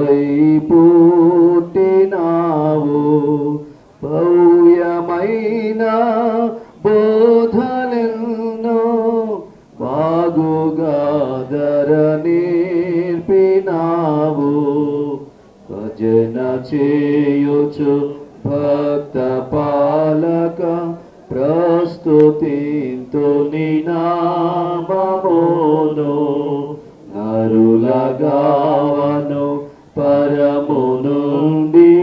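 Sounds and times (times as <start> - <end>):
person singing devotional song: 0.0 - 32.0.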